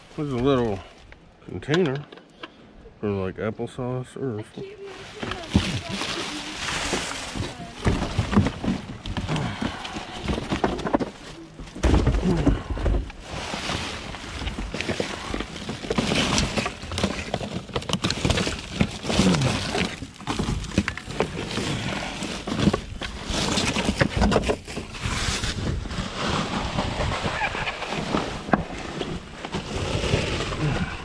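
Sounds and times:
plastic and cardboard rustling: 4.6 - 31.0
knocks and crackles of items: 5.0 - 27.3.

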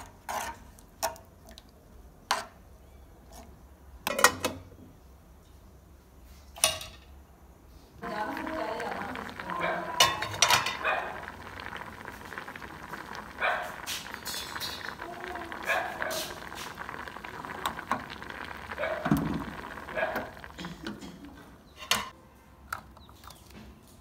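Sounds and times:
pot of water boiling: 7.9 - 22.2
background voices: 8.0 - 21.6.

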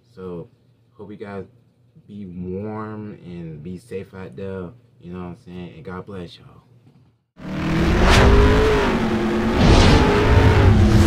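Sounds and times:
deep bass drone: 7.4 - 11.0
rising whooshes: 7.4 - 11.0.

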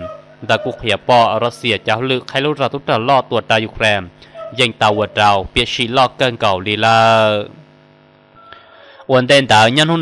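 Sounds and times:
man narrating: 0.0 - 7.6, 9.1 - 10.0
faint steady hum: 0.0 - 10.0.

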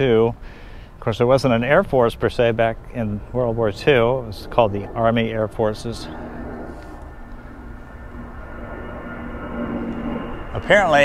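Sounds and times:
airplane passing overhead: 0.0 - 11.0.

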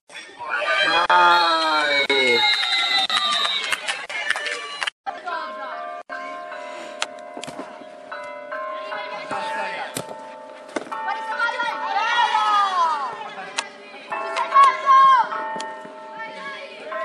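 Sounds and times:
steady ringing tones: 5.2 - 17.0.

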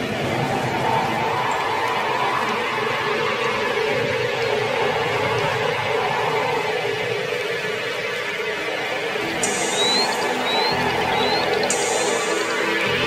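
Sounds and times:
ambient drone: 0.0 - 13.0.

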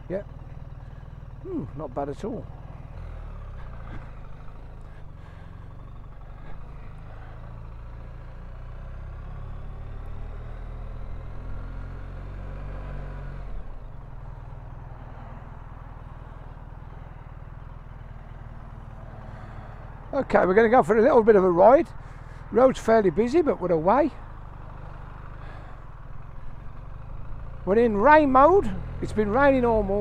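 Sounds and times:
motorcycle engine running: 0.0 - 30.0.

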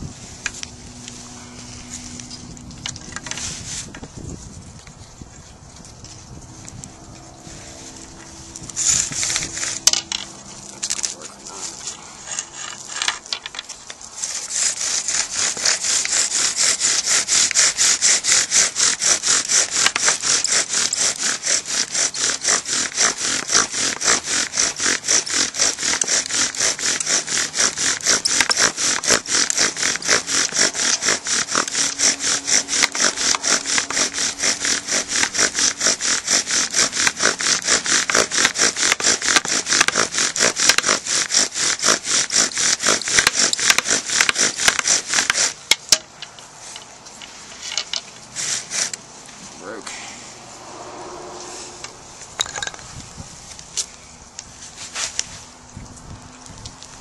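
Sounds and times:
bow drill grinding wood: 0.0 - 55.4.

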